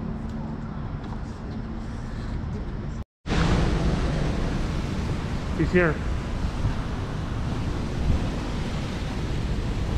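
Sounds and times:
wind buffeting microphone: 3.3s - 9.9s.

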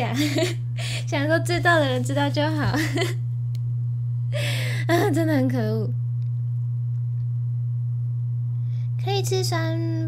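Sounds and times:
low-pitched hum: 0.0s - 10.0s.

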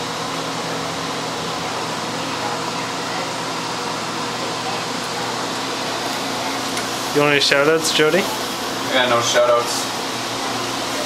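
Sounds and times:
whir of fans: 0.0s - 11.0s.

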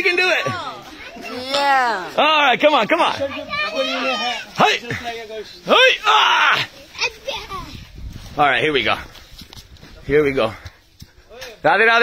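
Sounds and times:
adults and children cheering: 3.4s - 4.6s.

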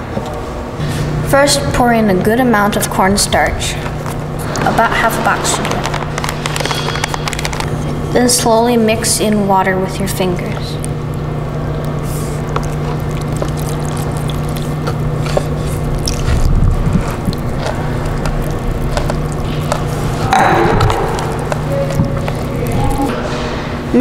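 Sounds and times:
steady low hum: 0.0s - 24.0s
mixing cornstarch by hand: 11.8s - 23.8s.

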